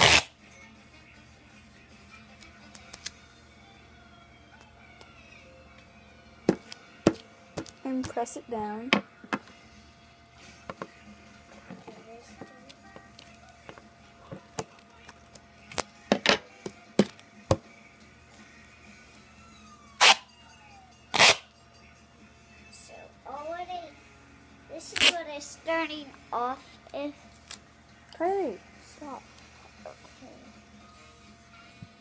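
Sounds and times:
duct tape tearing off roll: 0.0 - 0.3, 20.0 - 20.2, 21.2 - 21.4, 24.9 - 25.2
tape crackling and tapping: 11.6 - 17.6.

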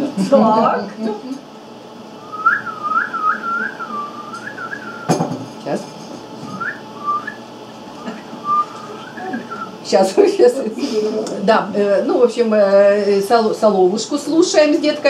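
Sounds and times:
woman whistling birdsong: 2.2 - 5.2, 6.5 - 7.4, 8.0 - 9.7
brief knock: 4.4 - 5.6.

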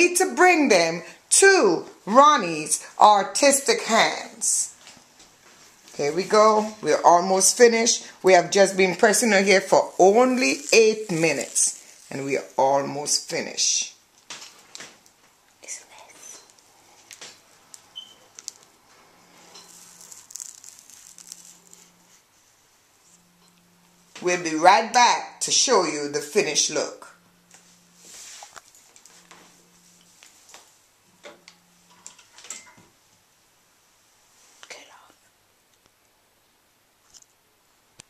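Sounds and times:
flat iron sizzling on hair: 7.4 - 15.1, 16.2 - 23.3
faint whisper: 15.6 - 16.5, 34.6 - 35.4.

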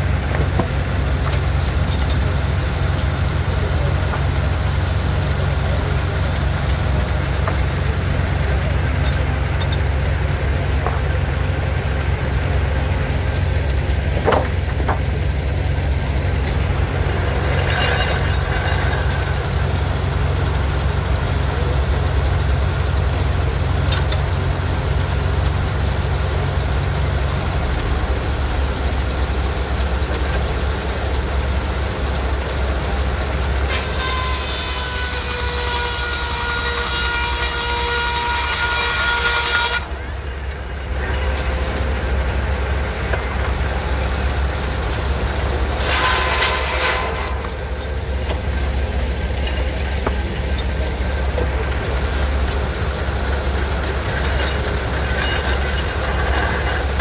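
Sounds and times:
circular saw blade whining through log: 0.0 - 57.0
steam engine low rumble: 0.0 - 57.0.

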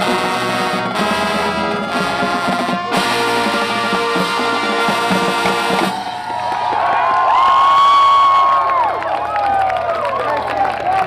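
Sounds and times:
marching band final chord: 0.0 - 6.3
onlookers cheering and whooping: 5.8 - 11.0.

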